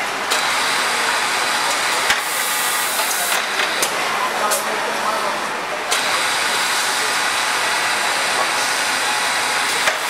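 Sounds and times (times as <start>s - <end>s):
machinery noise and hiss: 0.0s - 10.0s.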